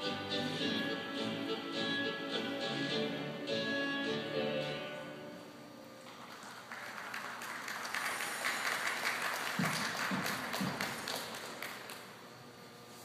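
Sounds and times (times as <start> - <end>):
audience clapping: 6.1 - 12.2.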